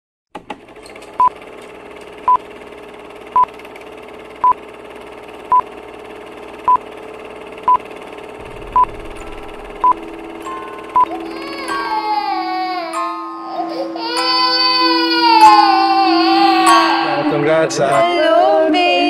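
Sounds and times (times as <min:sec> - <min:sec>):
steady low hum: 0:07.7 - 0:12.0
short high beeps: 0:08.5 - 0:11.1.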